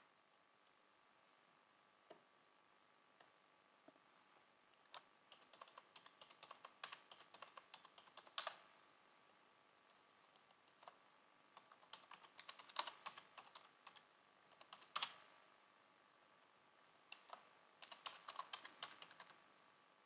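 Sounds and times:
typing on computer keyboard: 4.9 - 8.6, 11.6 - 15.2, 17.1 - 19.4.

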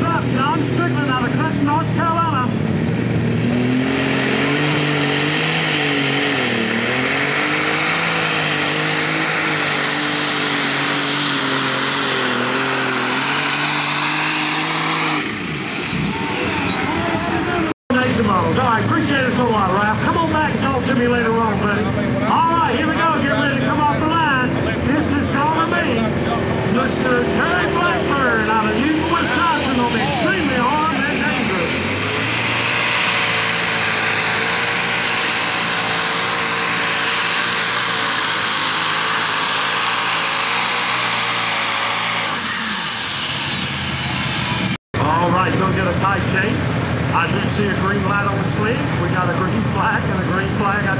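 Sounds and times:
diesel tractor engines running hard: 0.0 - 50.9
rising engine whine: 0.0 - 50.9
voices: 16.0 - 31.9.

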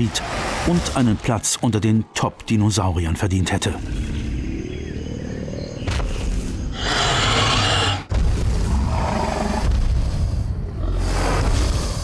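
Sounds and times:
creature roaring: 6.8 - 9.7.

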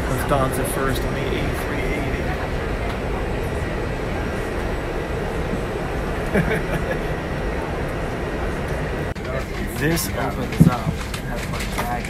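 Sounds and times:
aircraft cabin rumble: 0.0 - 12.0.

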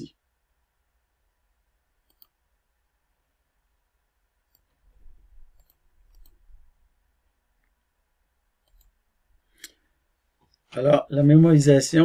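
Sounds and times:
computer mouse clicks: 2.0 - 2.4, 4.4 - 4.8, 5.4 - 6.6, 8.6 - 9.0.

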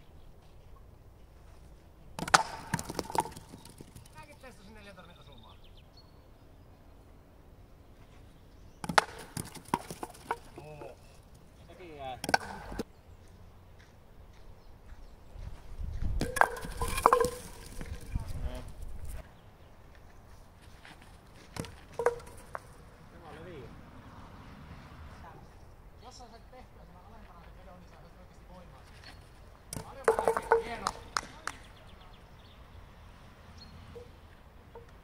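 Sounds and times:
wooden batons clattering on pins: 2.2 - 4.2, 8.8 - 11.4, 16.2 - 18.2, 21.6 - 22.8, 29.7 - 31.2.

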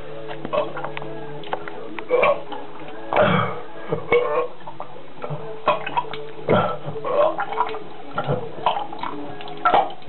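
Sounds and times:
person burping: 3.2 - 4.5, 6.5 - 7.3.

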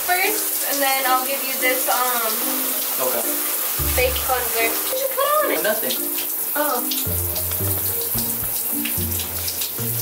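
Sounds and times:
shower spray hissing: 0.0 - 10.0.

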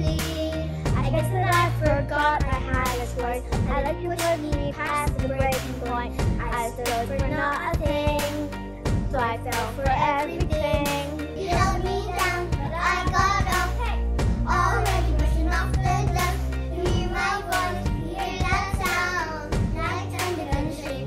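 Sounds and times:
backing track with beat: 0.0 - 21.0
girls singing: 9.3 - 21.0.

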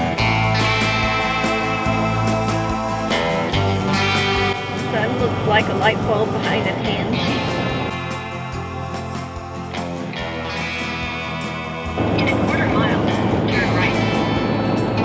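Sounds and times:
background guitar music: 0.0 - 15.0
person speaking: 4.8 - 7.6.

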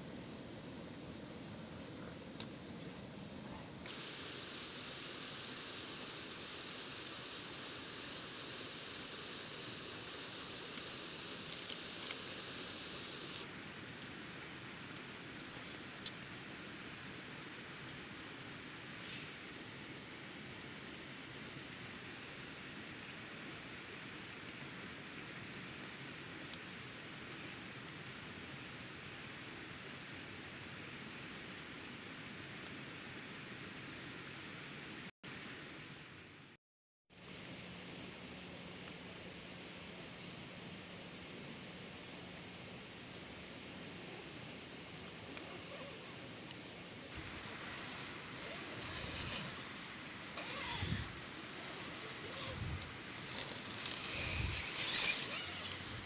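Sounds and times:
low hiss: 0.0 - 36.6, 37.2 - 56.0
crickets and insects trilling: 0.0 - 56.0.

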